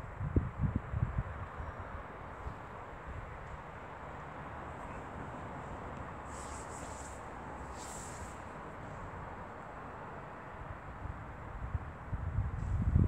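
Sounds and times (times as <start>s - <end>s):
outdoor background noise: 0.0s - 13.0s
faint high hisses: 6.3s - 8.5s.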